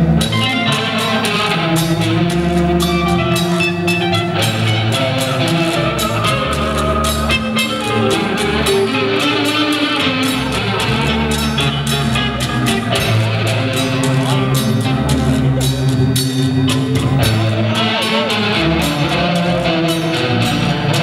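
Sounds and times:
electric bass: 0:00.0 - 0:21.0
electric guitar: 0:00.0 - 0:21.0.

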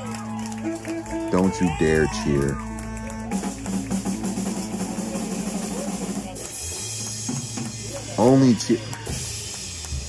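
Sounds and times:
drum solo: 0:03.3 - 0:08.3.

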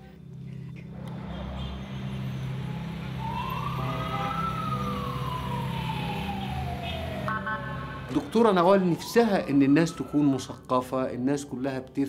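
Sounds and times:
street traffic drone: 0:00.0 - 0:11.6
siren wailing: 0:01.3 - 0:10.8.

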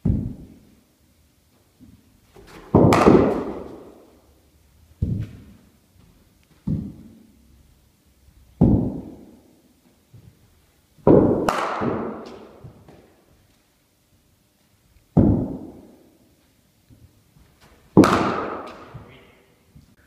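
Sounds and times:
ball thudding onto mat: 0:02.4 - 0:03.9, 0:06.6 - 0:07.2, 0:11.0 - 0:13.1
cricket bat striking ball: 0:02.6 - 0:04.0, 0:08.6 - 0:09.4, 0:11.1 - 0:12.9, 0:15.2 - 0:16.0, 0:17.9 - 0:19.1.

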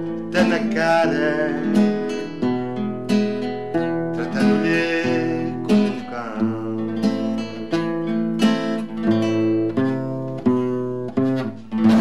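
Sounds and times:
classical guitar strumming chords: 0:00.0 - 0:12.0.

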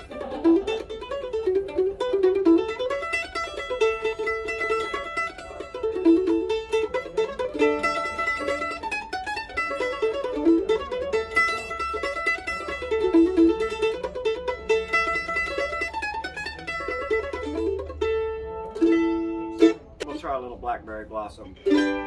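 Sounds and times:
mandolin playing brisk tune: 0:00.0 - 0:22.0.

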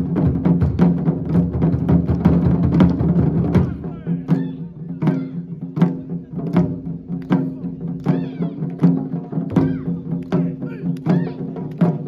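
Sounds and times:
taiko drums beating: 0:00.0 - 0:12.0.

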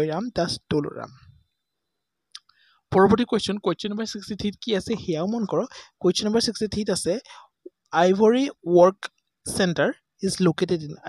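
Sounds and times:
person speaking: 0:00.0 - 0:01.3, 0:02.9 - 0:11.0.

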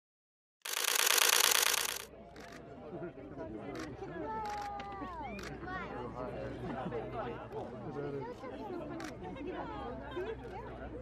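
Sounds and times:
crowd chattering: 0:00.7 - 0:11.0.

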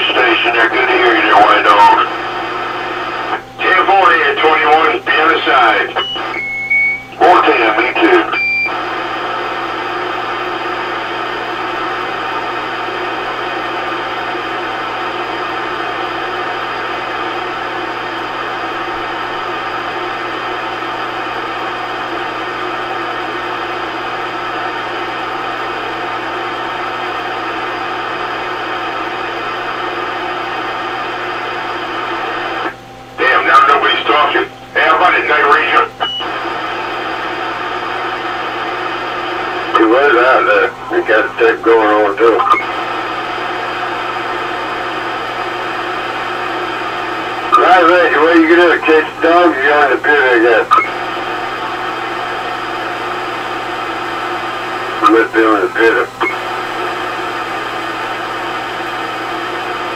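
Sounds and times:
garbled radio transmission: 0:00.0 - 0:14.8, 0:30.5 - 0:59.9
radio static hiss: 0:00.0 - 0:59.9
short radio beep: 0:47.5 - 0:47.9.

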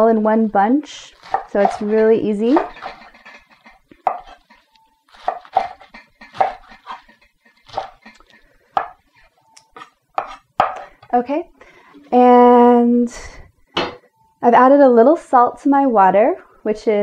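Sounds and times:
knife chopping on wooden board: 0:01.2 - 0:03.0, 0:04.0 - 0:04.4, 0:05.2 - 0:07.1, 0:07.7 - 0:08.0, 0:08.8 - 0:09.0, 0:10.2 - 0:10.8.

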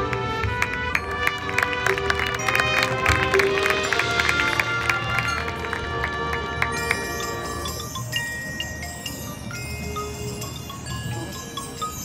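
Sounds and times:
marching band playing: 0:00.0 - 0:11.8.

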